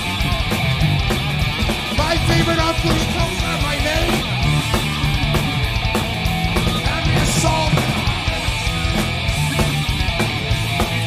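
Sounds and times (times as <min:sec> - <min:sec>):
heavy metal band playing live: 0:00.0 - 0:11.0
drum hits: 0:04.0 - 0:11.0.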